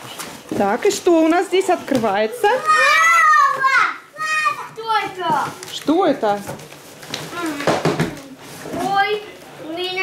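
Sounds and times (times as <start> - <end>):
cardboard and fabric rustling: 0.0 - 10.0
children's exclamations: 2.6 - 5.2.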